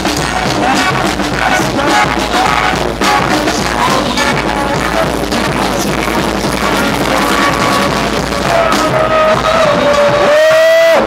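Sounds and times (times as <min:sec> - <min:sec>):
brass band playing: 0:00.0 - 0:10.9.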